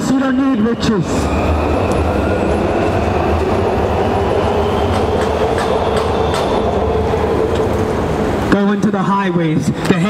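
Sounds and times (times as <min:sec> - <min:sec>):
train rumbling overhead: 0:00.0 - 0:09.8.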